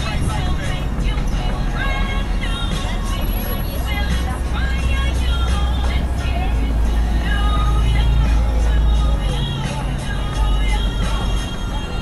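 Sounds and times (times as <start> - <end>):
music: 0.0 - 12.0
pedestrians chattering: 0.0 - 12.0
road traffic rumble: 0.0 - 12.0.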